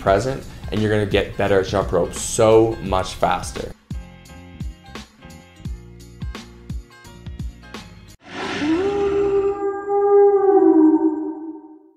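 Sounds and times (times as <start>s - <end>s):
siren-like synthesized tone: 8.2s - 11.9s.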